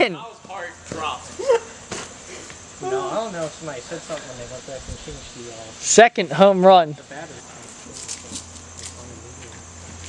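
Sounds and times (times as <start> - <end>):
people talking: 0.0 - 1.7, 2.8 - 9.6
crickets chirring: 0.0 - 10.0.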